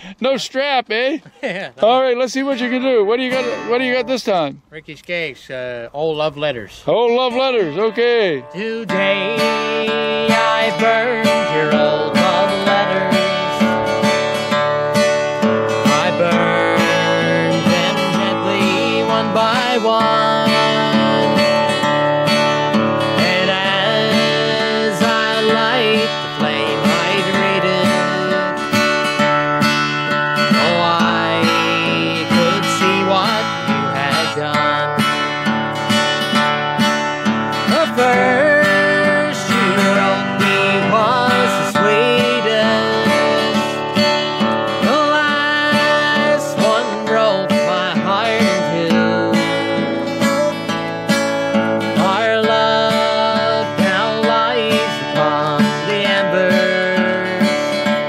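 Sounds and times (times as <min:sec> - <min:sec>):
acoustic guitar strumming: 0:00.0 - 0:58.0
man singing: 0:01.8 - 0:04.3, 0:06.9 - 0:14.6, 0:15.7 - 0:29.2, 0:30.1 - 0:35.4, 0:37.5 - 0:58.0.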